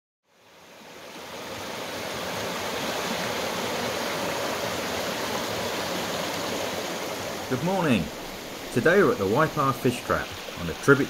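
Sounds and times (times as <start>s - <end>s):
stream rushing over rocks: 0.3s - 11.0s.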